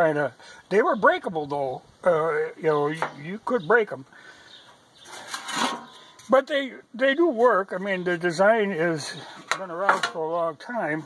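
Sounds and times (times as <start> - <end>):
metal tray scraping on metal: 5.1 - 6.1.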